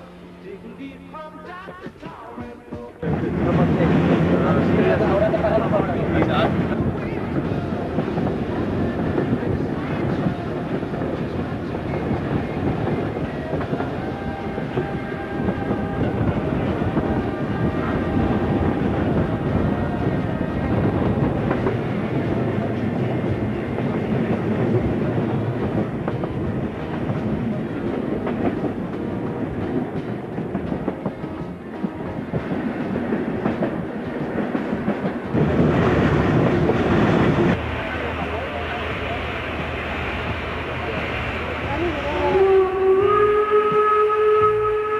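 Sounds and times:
train rumble: 0:00.0 - 0:44.9
clickety-clack of wheels: 0:23.8 - 0:35.7
train whistle blast: 0:42.0 - 0:44.9.

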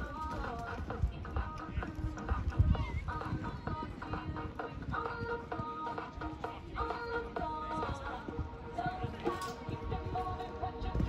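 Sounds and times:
background music from loudspeaker: 0:00.0 - 0:11.0
hooves thudding on sand: 0:00.0 - 0:11.0.

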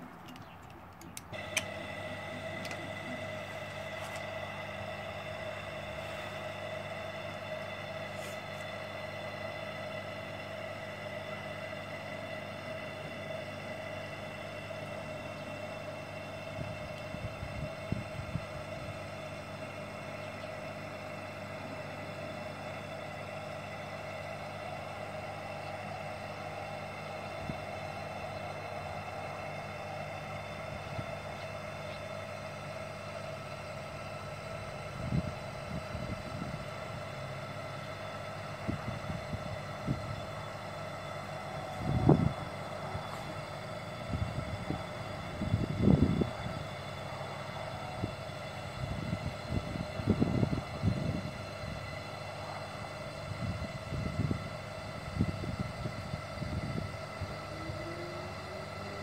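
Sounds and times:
air pump humming: 0:00.0 - 0:59.0.

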